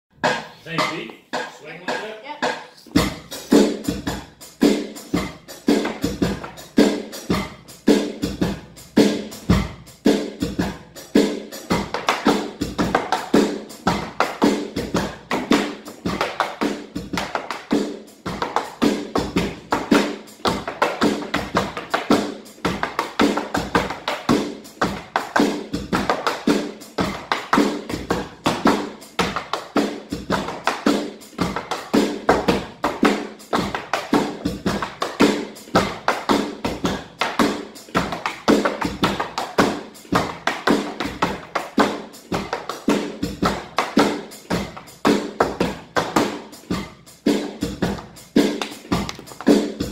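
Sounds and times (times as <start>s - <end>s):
music: 0.1s - 49.9s
tap shoes on wooden board: 47.9s - 49.6s.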